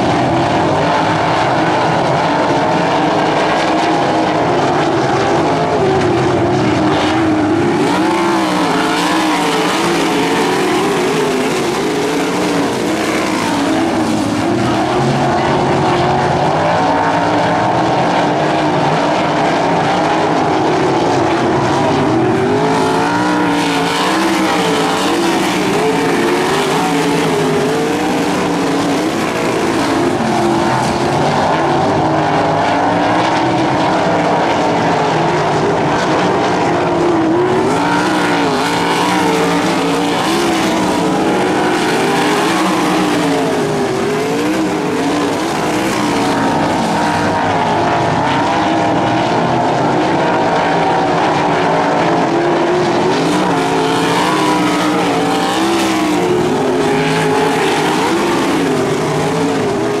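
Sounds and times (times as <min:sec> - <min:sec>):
racing car engines revving: 0:00.0 - 1:00.0.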